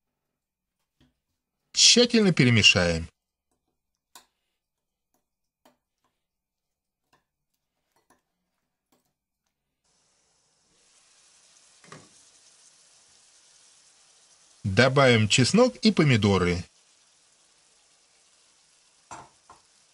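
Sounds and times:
vegetables sizzling in a pan: 9.8s - 19.9s.

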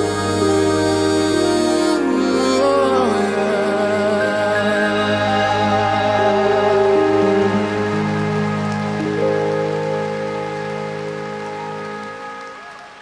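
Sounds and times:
digital keyboard chords: 0.0s - 13.0s.

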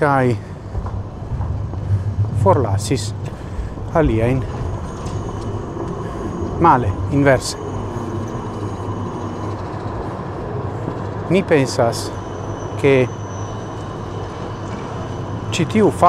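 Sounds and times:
low background rumble: 0.0s - 11.4s
faint hum: 0.0s - 16.0s.

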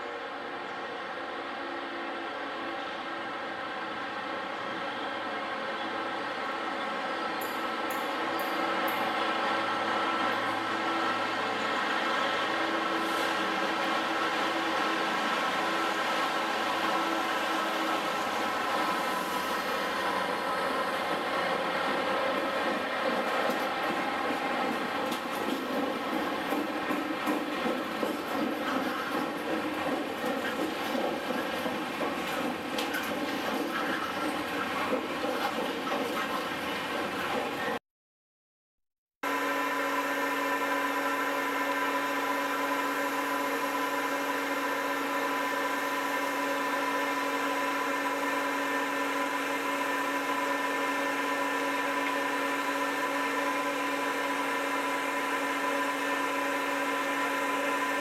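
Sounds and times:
diesel locomotive engine droning: 0.0s - 37.8s, 39.2s - 58.0s.

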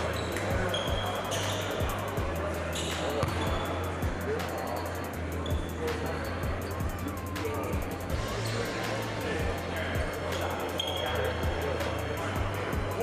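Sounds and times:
sneaker squeaks: 0.0s - 3.9s, 4.9s - 6.8s, 10.3s - 11.4s
players' voices: 0.0s - 13.0s
basketball bouncing on court: 2.9s - 3.7s
background music: 3.5s - 13.0s.

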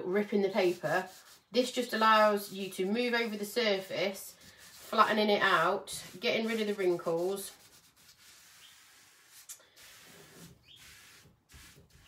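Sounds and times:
cling film rubbing over paper: 0.4s - 3.5s, 4.3s - 12.0s.

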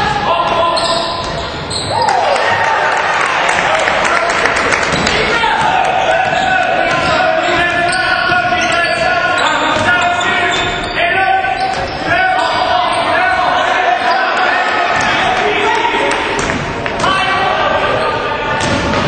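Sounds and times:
shouting and chatter: 0.0s - 19.0s.

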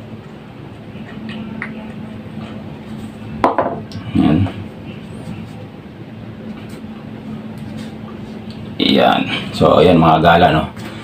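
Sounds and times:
faint hum: 0.0s - 11.0s
plastic bottle knocking on table: 3.4s - 3.8s.

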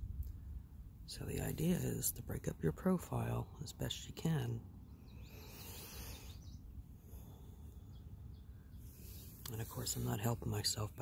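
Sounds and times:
low steady rumble: 0.0s - 11.0s
faint bird calls: 4.8s - 9.4s.

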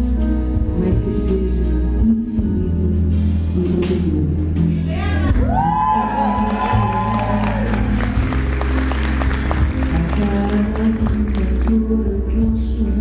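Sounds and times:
low piano accompaniment: 0.0s - 13.0s
woman singing a long note: 5.4s - 7.7s
audience clapping: 6.2s - 11.8s.

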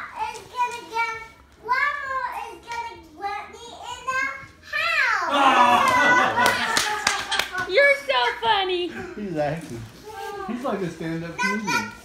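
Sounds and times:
hand claps: 5.8s - 7.8s.

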